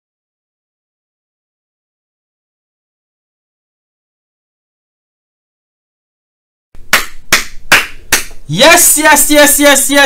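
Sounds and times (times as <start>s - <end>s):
man clapping hands: 6.8s - 8.4s.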